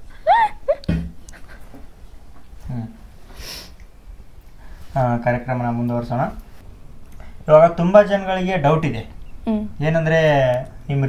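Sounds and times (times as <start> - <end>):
woman giggling: 0.0 - 1.8.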